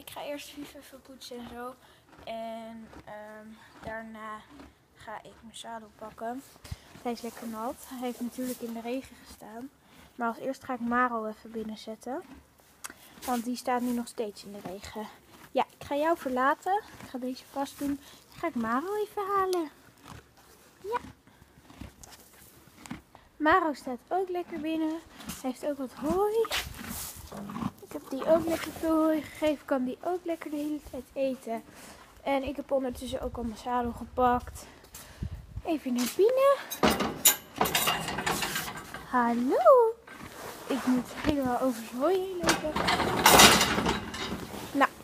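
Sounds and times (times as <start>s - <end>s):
horse hooves clopping: 10.4s - 23.3s.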